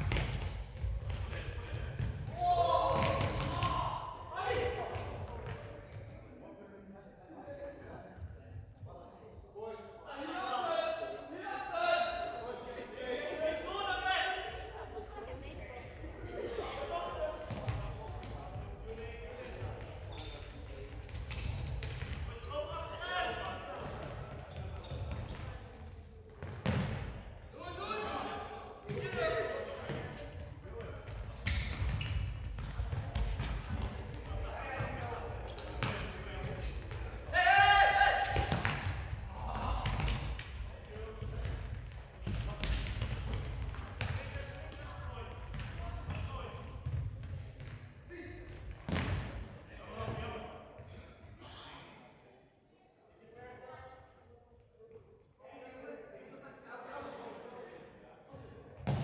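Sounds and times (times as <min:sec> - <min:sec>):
players shouting: 0:37.3 - 0:38.6.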